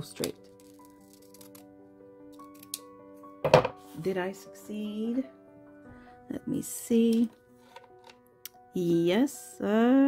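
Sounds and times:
scissors cutting plastic: 0.0s - 1.7s, 2.3s - 2.9s.

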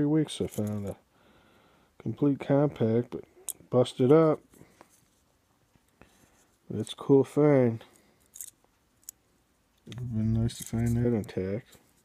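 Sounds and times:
light metal scrape: 10.1s - 12.0s.

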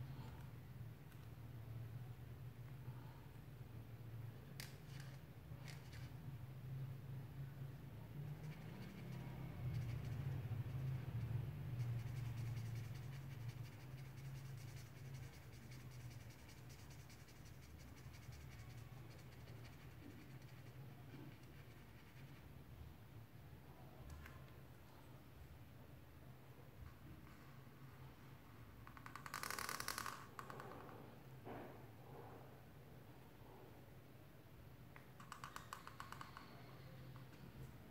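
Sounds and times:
marker scratching on paper: 8.3s - 22.5s.

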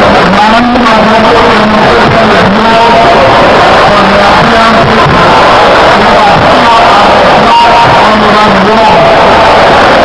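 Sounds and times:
man speaking over loudspeaker: 0.0s - 9.6s.

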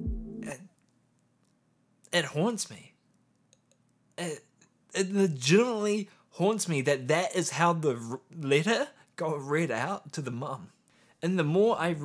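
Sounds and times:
background music chord: 0.0s - 0.6s.

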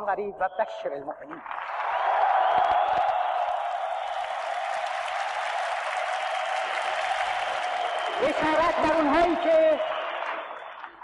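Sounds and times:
audience applauding: 1.4s - 11.0s.

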